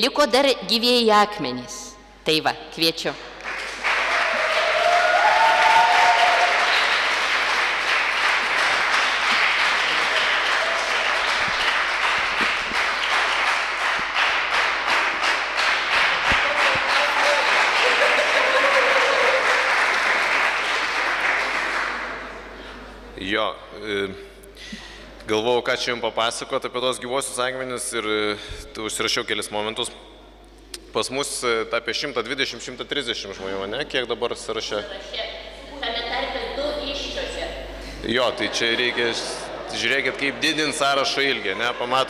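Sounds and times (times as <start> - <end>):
audience applauding: 3.4 - 22.4, 38.3 - 42.0.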